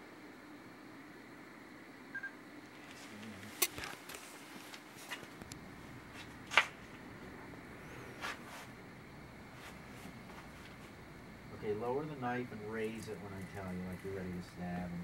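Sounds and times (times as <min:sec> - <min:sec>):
low background hiss: 0:00.0 - 0:15.0.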